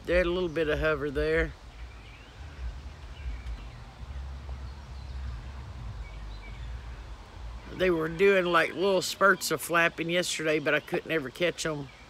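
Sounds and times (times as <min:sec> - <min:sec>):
low outdoor rumble: 0:00.0 - 0:09.8
faint bird chirps: 0:00.2 - 0:12.0.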